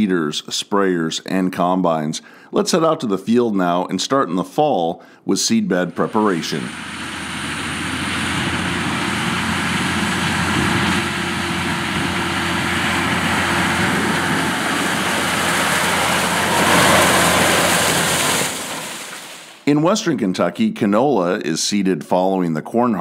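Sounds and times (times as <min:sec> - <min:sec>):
tractor diesel engine under load: 0:05.8 - 0:19.6.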